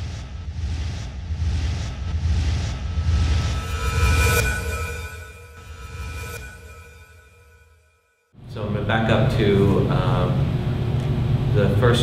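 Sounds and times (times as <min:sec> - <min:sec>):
deep low drone: 0:00.0 - 0:07.1
swishing swells: 0:00.0 - 0:07.6
electronic intro music: 0:00.0 - 0:08.4.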